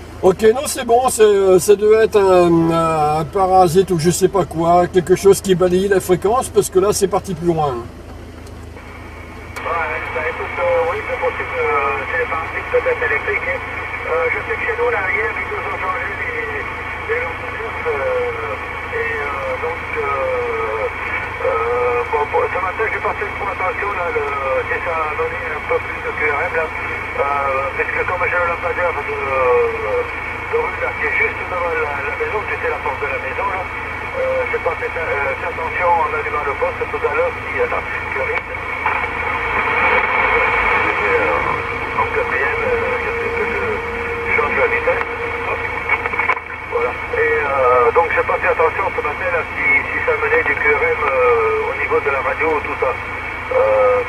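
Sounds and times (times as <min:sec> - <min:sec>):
man's voice over radio speaker: 0:00.0 - 0:08.0, 0:09.6 - 0:54.0
steady high tone: 0:38.5 - 0:48.2.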